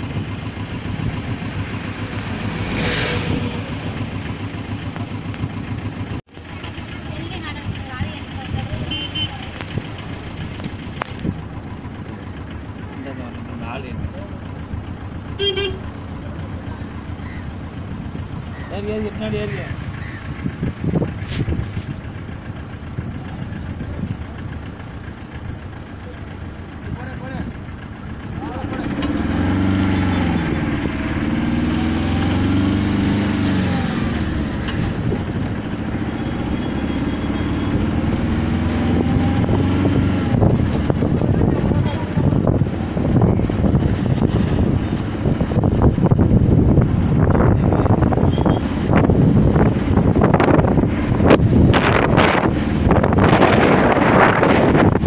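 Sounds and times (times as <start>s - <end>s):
vehicle engine running: 0.0s - 55.0s
wind buffeting microphone: 38.9s - 55.0s.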